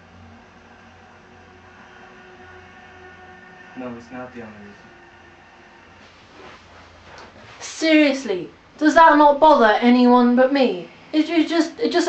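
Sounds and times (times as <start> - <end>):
faint hum and hiss from television: 0.0 - 12.0.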